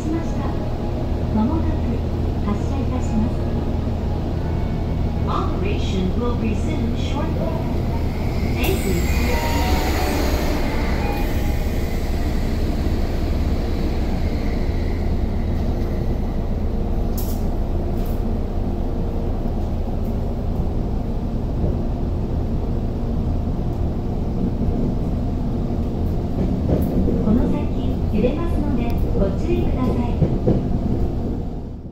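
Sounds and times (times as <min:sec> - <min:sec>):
passing train rushing: 0:00.0 - 0:19.4, 0:22.7 - 0:31.9
train wheels rumbling on rail: 0:05.2 - 0:31.9.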